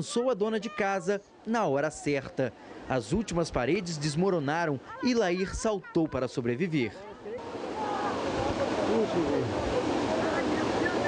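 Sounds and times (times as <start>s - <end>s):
flood torrent rushing: 7.2s - 11.0s
distant voices shouting: 7.4s - 11.0s.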